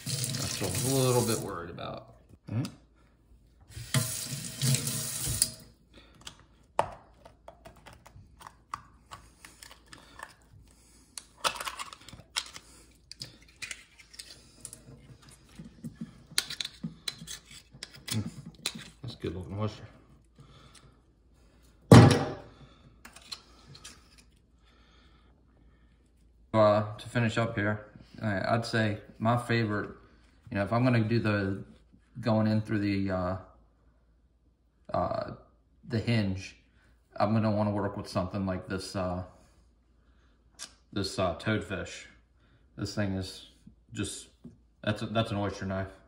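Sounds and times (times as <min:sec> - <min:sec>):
knife scraping oyster shell: 0:16.4 - 0:18.8
hard object thunk on steel sink: 0:21.9 - 0:22.4.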